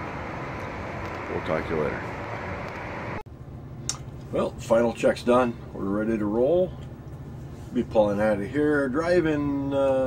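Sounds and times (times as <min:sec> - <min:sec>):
low hum inside vehicle cab: 0:00.0 - 0:10.0
outdoor background noise: 0:00.0 - 0:10.0.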